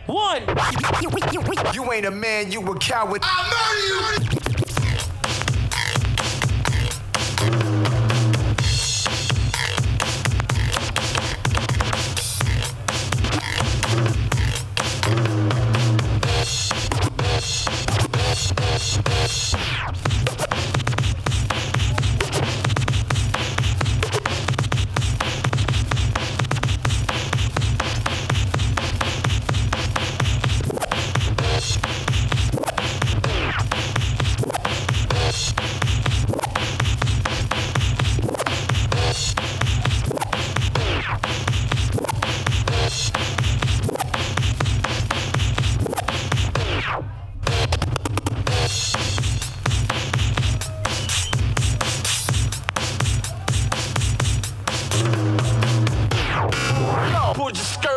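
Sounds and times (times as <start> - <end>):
vinyl records scratched: 0.0 - 57.9
heavy electronic beat: 0.1 - 2.2, 2.8 - 57.9.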